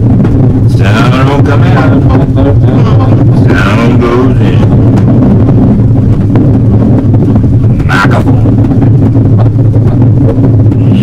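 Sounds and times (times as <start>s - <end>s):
harsh noise music drone: 0.0s - 11.0s.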